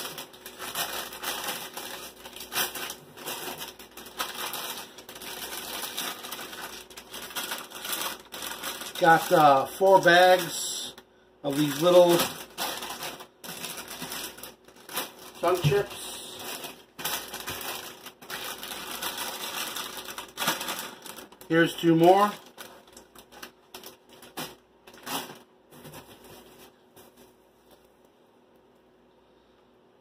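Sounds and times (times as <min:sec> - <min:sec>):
food packaging rustling: 0:00.0 - 0:10.8, 0:11.5 - 0:27.9
foil snack bags crinkling: 0:00.0 - 0:27.2.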